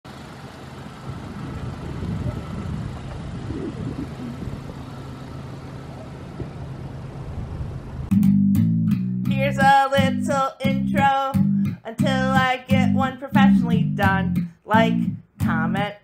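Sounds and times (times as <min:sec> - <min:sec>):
car engine and tyre hum: 0:00.1 - 0:08.1.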